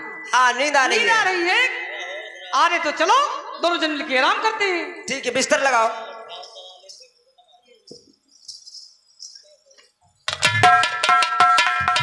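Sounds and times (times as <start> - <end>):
person speaking: 0.0 - 10.0
small bells jingling: 8.0 - 12.0.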